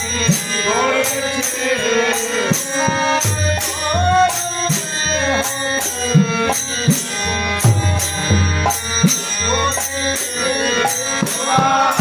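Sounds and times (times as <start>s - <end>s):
voices singing: 0.0s - 6.4s, 8.0s - 12.0s
hand cymbals striking a beat: 0.0s - 12.0s
harmonium chords: 0.0s - 12.0s.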